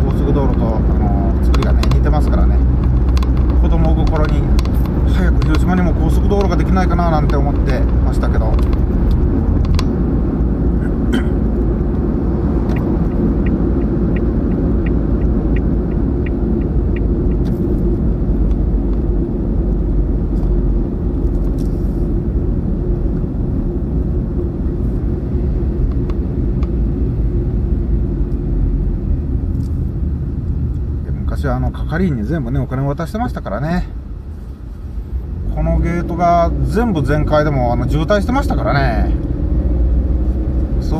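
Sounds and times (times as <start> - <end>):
car road and engine rumble: 0.0 - 40.9.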